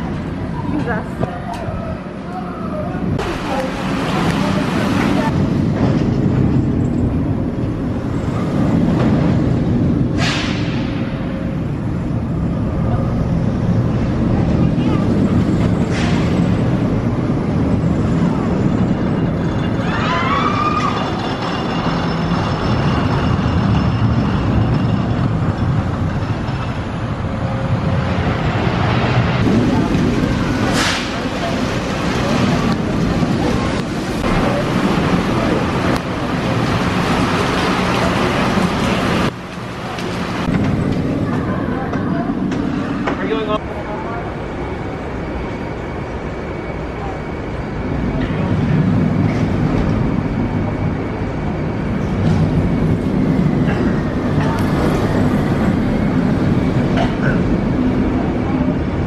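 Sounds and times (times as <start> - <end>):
roller coaster train rumbling: 0.0 - 59.0.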